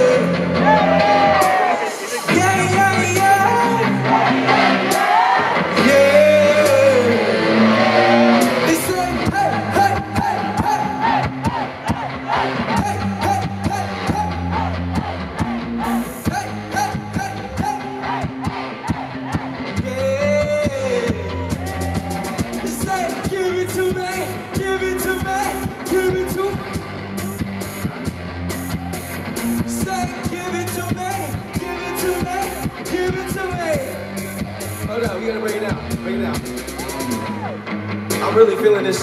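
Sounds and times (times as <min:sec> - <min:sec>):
bass guitar notes: 0:00.0 - 0:01.7, 0:02.3 - 0:39.0
man singing lead vocals: 0:00.0 - 0:27.5, 0:29.5 - 0:34.1.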